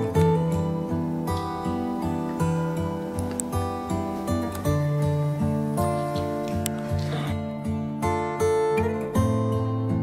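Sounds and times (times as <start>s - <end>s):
strummed acoustic guitar chords: 0.0s - 10.0s.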